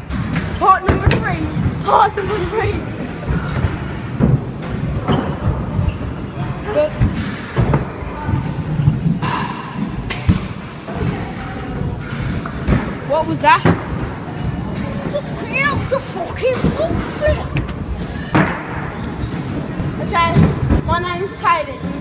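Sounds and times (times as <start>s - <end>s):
indistinct voices: 13.1s - 22.0s
scooters thudding on plywood ramps: 20.1s - 21.0s.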